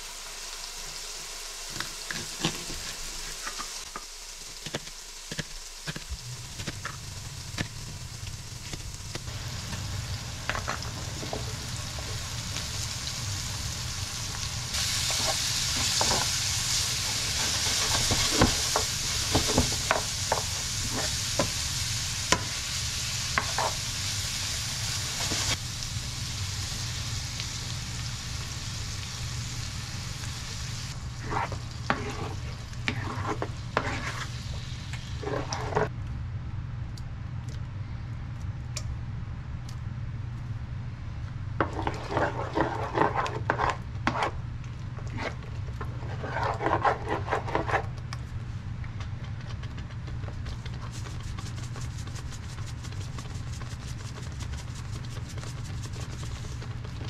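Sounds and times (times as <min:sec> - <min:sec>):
food sizzling in a skillet: 0:00.0 - 0:35.9, 0:41.6 - 0:44.3
spoon scraping and knocking pan: 0:17.4 - 0:21.5, 0:23.4 - 0:23.8, 0:31.2 - 0:34.3, 0:35.2 - 0:35.9, 0:41.6 - 0:44.4.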